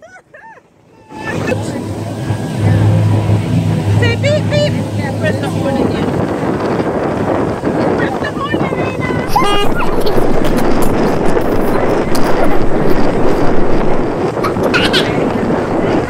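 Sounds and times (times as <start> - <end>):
boat and water noise: 0.0 - 16.0
wind rushing over microphone: 1.0 - 16.0.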